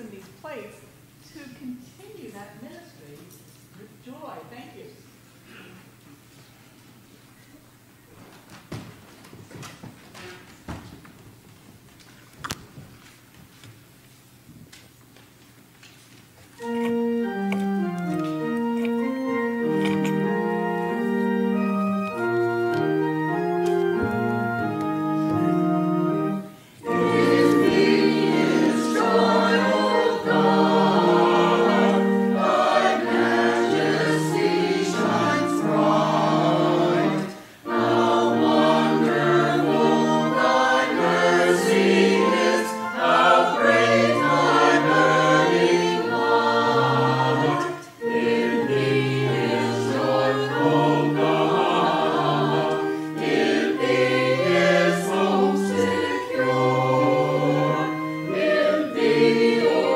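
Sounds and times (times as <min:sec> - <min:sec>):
footsteps on wooden floor: 0:08.1 - 0:13.8
choir singing sustained chords: 0:16.6 - 0:59.9.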